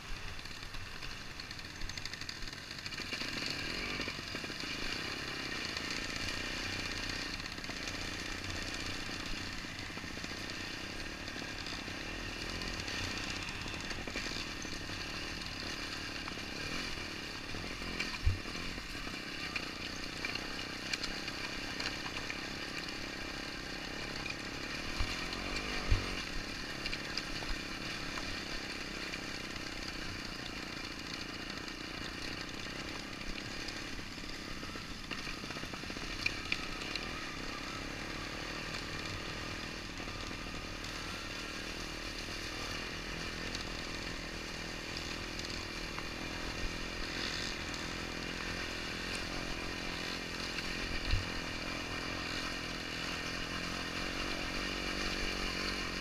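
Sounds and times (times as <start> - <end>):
motorcycle engine running slowly: 0.0 - 56.0.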